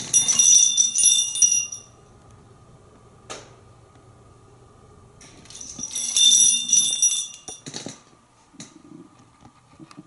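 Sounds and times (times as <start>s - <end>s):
small metal bells jingling: 0.0s - 2.0s, 5.5s - 7.7s.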